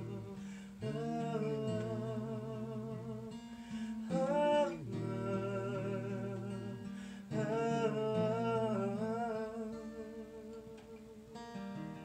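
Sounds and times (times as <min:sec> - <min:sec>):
acoustic guitar: 0:00.0 - 0:12.0
man humming a melody: 0:00.0 - 0:12.0.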